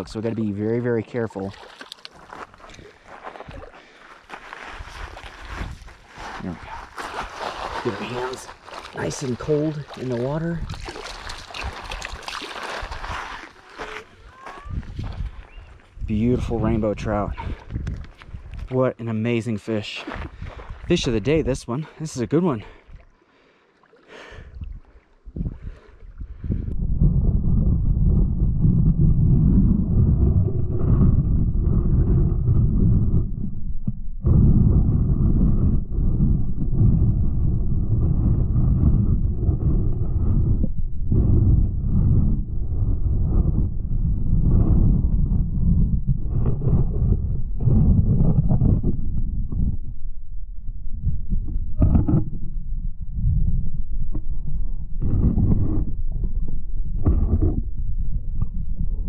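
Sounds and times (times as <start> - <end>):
muffled underwater water sloshing: 7.3 - 15.9.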